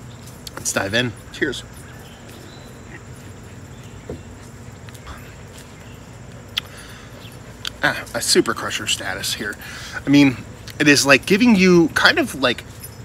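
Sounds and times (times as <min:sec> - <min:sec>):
faint high insect trill: 0:00.0 - 0:13.0.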